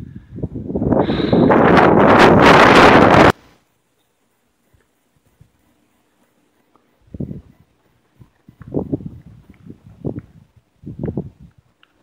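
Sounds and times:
wind on microphone: 0.0 - 3.4, 7.0 - 11.8.

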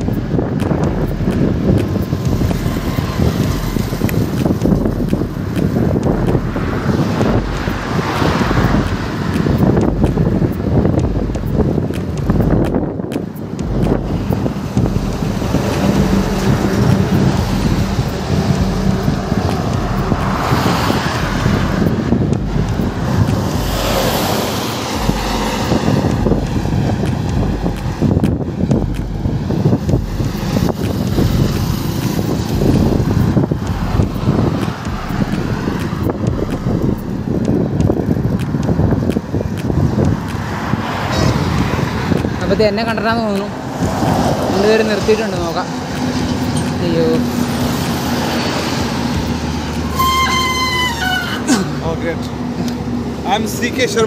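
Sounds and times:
bus passing close: 0.0 - 54.0
highway traffic: 0.0 - 54.0
wind buffeting microphone: 0.0 - 54.0.

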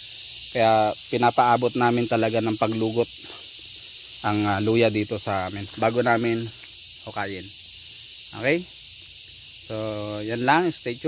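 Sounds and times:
high-pitched outdoor hiss: 0.0 - 11.0
man speaking: 0.6 - 3.1, 4.2 - 6.5, 7.1 - 7.4, 8.4 - 8.7, 9.7 - 11.0.

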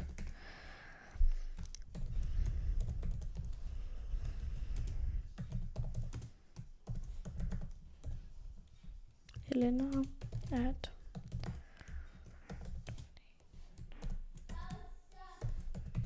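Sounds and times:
computer keyboard typing: 0.0 - 0.4, 1.5 - 8.2, 9.3 - 16.0.

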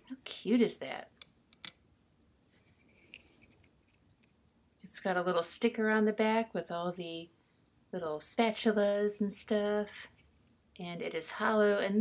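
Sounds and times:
faint rubbing: 2.5 - 4.4.

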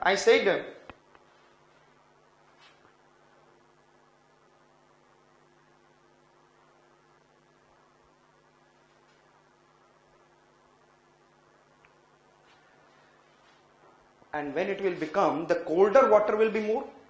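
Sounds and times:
faint electrical hum and hiss: 0.0 - 17.0.

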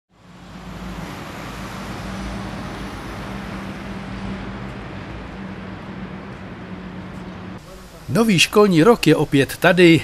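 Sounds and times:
road traffic noise: 0.1 - 10.0.

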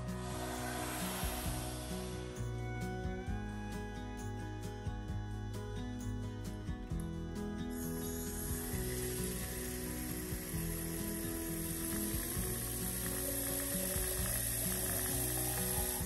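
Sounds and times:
soft background music: 0.0 - 16.0.

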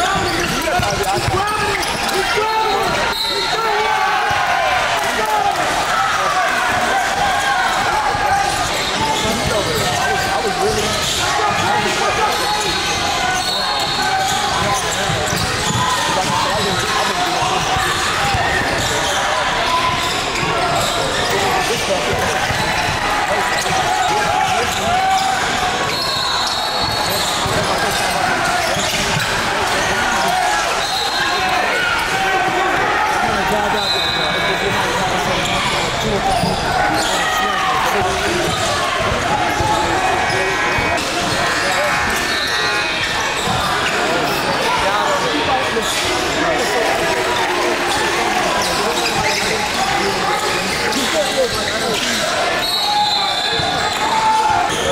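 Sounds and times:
sneakers squeaking: 0.0 - 4.4, 6.6 - 54.9
players and spectators calling out: 0.0 - 54.9.

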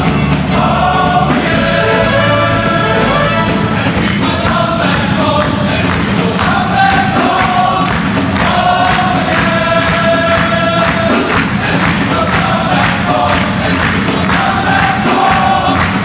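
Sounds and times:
male choir singing in harmony: 0.0 - 16.0
hands clapping a beat: 3.2 - 16.0.

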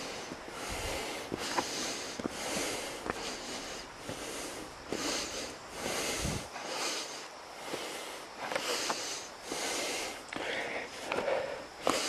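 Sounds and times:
person breathing heavily: 0.0 - 12.0.

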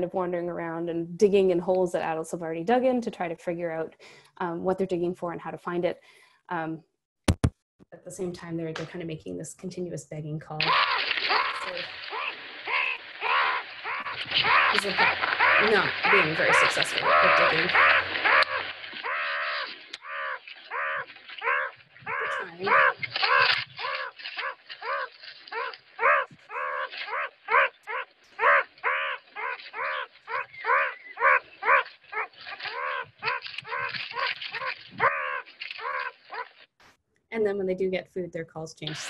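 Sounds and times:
meerkat pup begging calls: 10.6 - 36.5.

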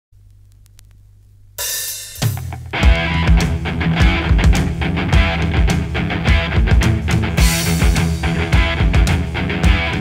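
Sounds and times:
vinyl surface clicks: 0.2 - 1.0
low steady hum: 0.2 - 2.8
cymbal crash: 1.6 - 2.6.

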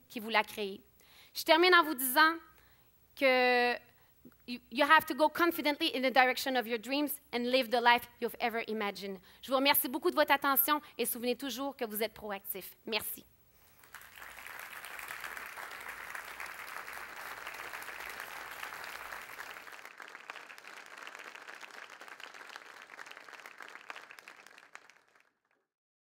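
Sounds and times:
audience applauding: 13.6 - 25.4.

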